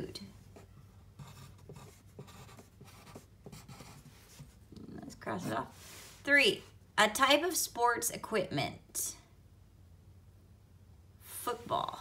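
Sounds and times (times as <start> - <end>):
pencil scratching on paper: 0.5 - 4.6.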